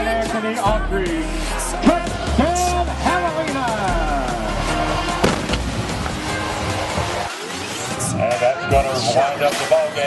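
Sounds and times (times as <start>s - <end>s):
background music with deep bass: 0.0s - 10.0s.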